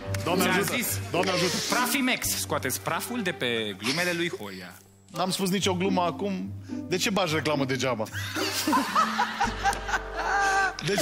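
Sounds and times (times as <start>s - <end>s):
background music: 0.0s - 11.0s
people laughing: 8.1s - 11.0s.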